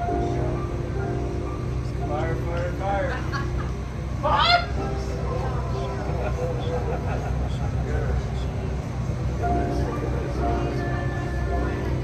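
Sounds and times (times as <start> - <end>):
faint scattered voices: 0.0 - 12.0
steady low hum: 0.0 - 12.0
person crying out loudly: 4.2 - 4.8.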